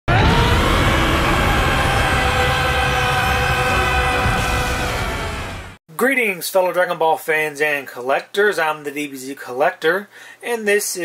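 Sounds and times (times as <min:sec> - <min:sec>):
low rumble: 0:00.1 - 0:05.8
droning sustained chord: 0:00.7 - 0:05.7.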